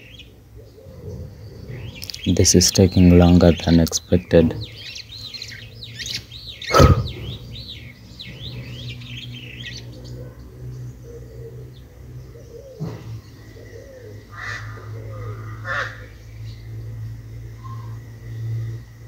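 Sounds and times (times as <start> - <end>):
steady low hum: 0.0 - 19.0
small bird warbling chirps: 1.6 - 10.4.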